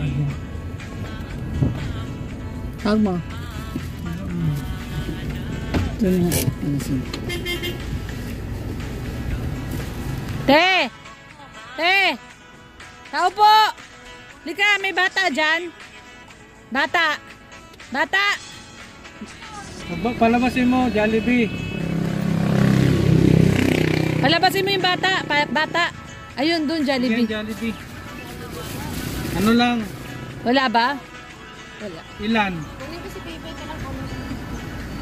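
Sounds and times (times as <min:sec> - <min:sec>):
vehicle engine rumble: 0:00.0 - 0:10.7, 0:19.1 - 0:35.0
music: 0:00.0 - 0:35.0.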